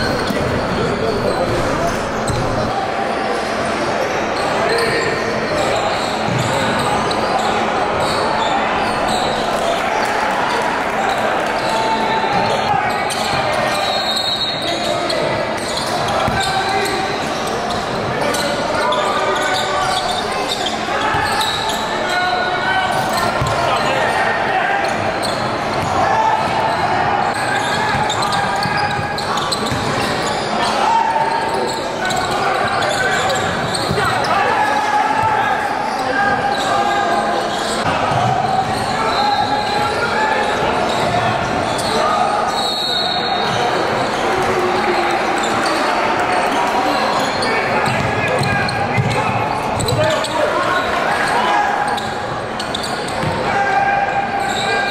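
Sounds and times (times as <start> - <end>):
voices of spectators and players: 0.0 - 54.9
basketball dribbling: 47.8 - 50.0.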